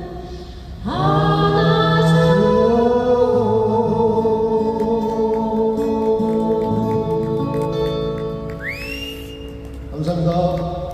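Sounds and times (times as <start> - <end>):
acoustic guitars playing chords: 0.0 - 10.9
high rising whistle: 8.6 - 9.5.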